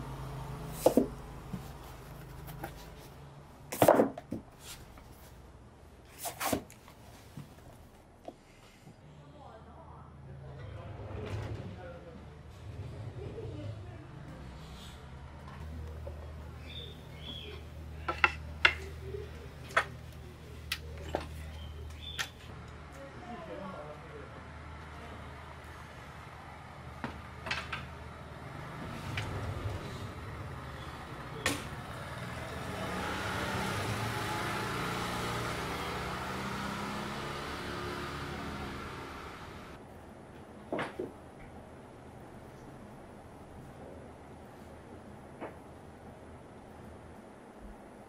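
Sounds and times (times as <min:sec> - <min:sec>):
books sliding on shelf: 0:00.7 - 0:03.1, 0:06.1 - 0:06.8.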